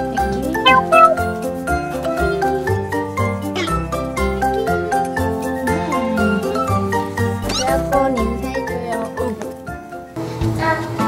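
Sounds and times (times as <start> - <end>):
bright background music: 0.0 - 10.8
kitten meowing: 0.7 - 1.3, 7.4 - 7.9.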